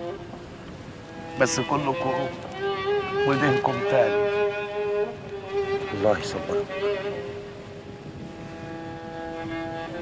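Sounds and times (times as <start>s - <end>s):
low boat rumble: 0.0s - 10.0s
soft string music: 0.0s - 10.0s.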